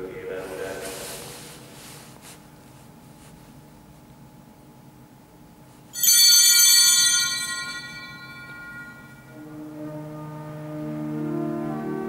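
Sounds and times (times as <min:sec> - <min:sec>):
altar bells ringing: 0:06.0 - 0:09.6
soft organ music: 0:07.1 - 0:12.0.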